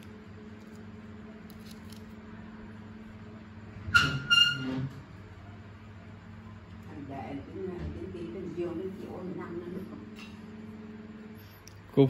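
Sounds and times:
low room hum: 0:00.0 - 0:12.0
high-pitched squeaks: 0:03.9 - 0:04.9.

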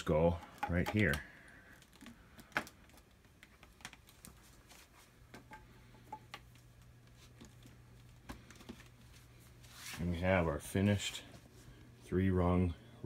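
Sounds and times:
plastic pipe fittings clicking: 0:00.0 - 0:04.1.

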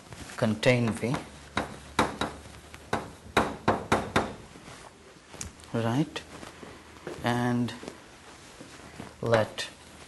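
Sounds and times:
chalk tapping on blackboard: 0:00.8 - 0:04.4.

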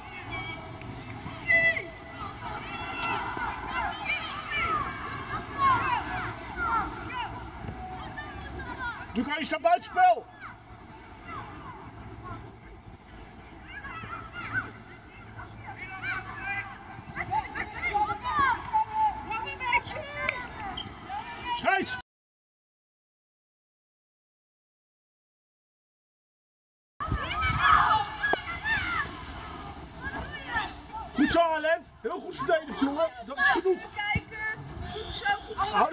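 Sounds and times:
young players shouting: 0:00.0 - 0:12.5, 0:13.6 - 0:22.0, 0:27.0 - 0:35.9
wind rumble on microphone: 0:27.0 - 0:29.8.

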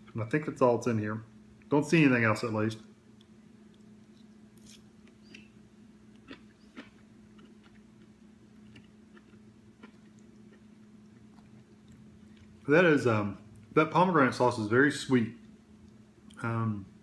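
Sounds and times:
steady low hum: 0:00.0 - 0:17.0
person chewing food: 0:03.1 - 0:12.7.

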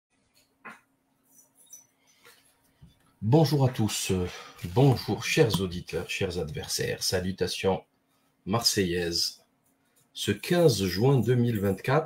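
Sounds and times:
low steady hum: 0:00.3 - 0:12.0.

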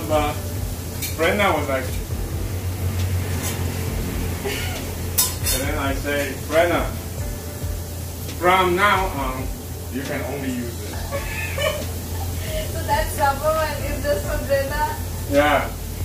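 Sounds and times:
meat frying in a pan: 0:00.0 - 0:16.0
steady low hum: 0:00.0 - 0:16.0
tongs clinking against pans: 0:00.9 - 0:02.1, 0:03.4 - 0:03.7, 0:05.1 - 0:06.5.

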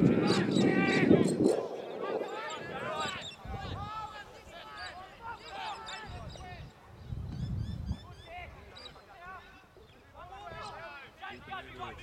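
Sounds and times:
distant shouted calls: 0:00.0 - 0:06.6.

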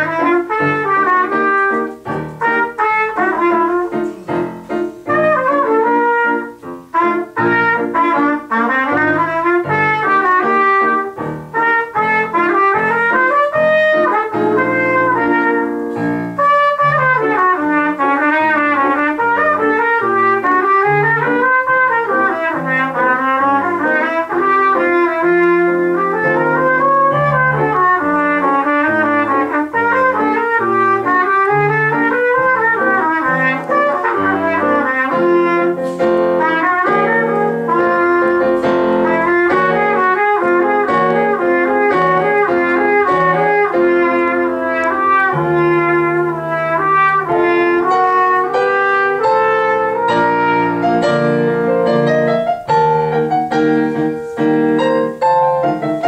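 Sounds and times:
piano accompaniment: 0:00.0 - 0:56.0
trumpet solo: 0:00.0 - 0:56.0.

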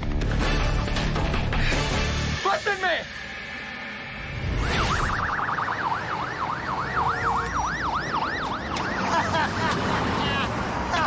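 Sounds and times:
ambulance siren wailing: 0:04.4 - 0:11.0.

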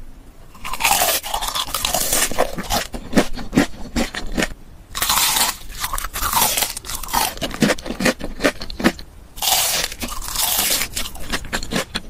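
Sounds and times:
crunching fried chicken: 0:00.5 - 0:12.0.

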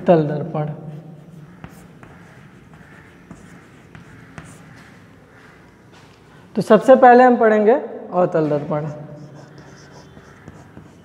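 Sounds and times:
chalk scratching on blackboard: 0:01.2 - 0:05.5, 0:08.8 - 0:11.0.

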